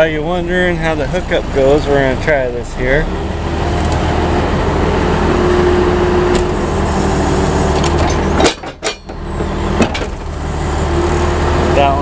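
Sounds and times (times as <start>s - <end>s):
heavy truck engine idling: 0.0s - 12.0s.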